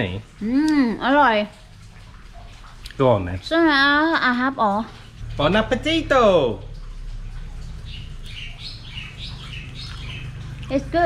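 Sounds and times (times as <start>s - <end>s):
steady low hum: 0.0s - 11.0s
bird chirping: 7.3s - 10.9s.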